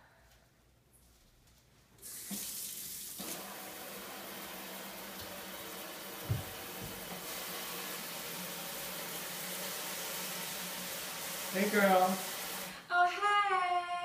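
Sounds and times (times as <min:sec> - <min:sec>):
water running into sink: 0:02.0 - 0:12.8
low thump: 0:06.3 - 0:07.0.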